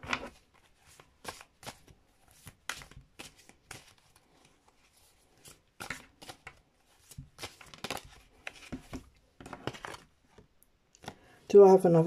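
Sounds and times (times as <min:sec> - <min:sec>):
cards being shuffled by hand: 0:00.0 - 0:11.2.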